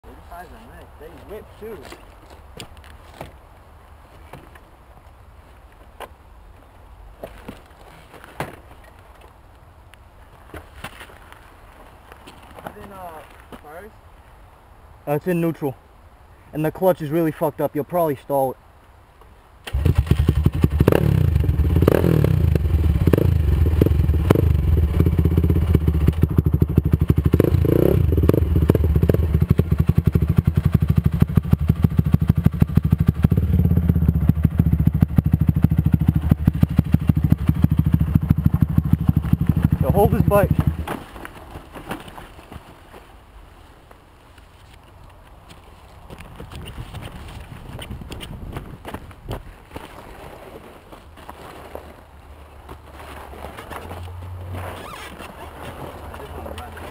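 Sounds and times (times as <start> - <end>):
faint background noise: 0.0 - 56.9
two-stroke engine revving: 19.7 - 40.9.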